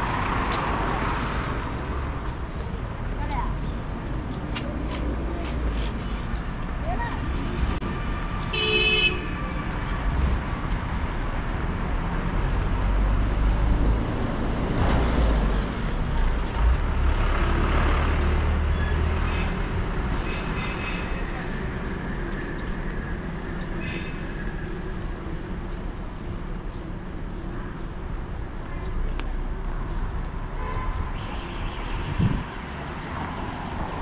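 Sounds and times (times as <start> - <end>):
road traffic: 0.0 - 34.0.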